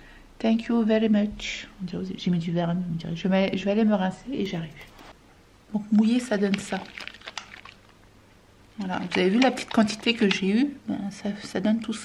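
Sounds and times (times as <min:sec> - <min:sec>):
short wet clicks: 0:06.4 - 0:08.0.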